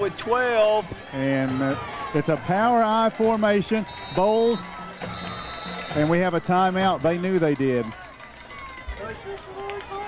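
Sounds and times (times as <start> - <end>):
distant crowd voices and calls: 0.0 - 10.0.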